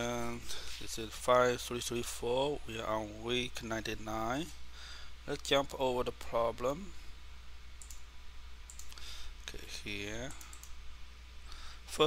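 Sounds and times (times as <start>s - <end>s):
low electrical hum: 0.0s - 12.0s
computer mouse clicks: 7.8s - 8.1s, 8.7s - 9.0s, 10.3s - 10.8s.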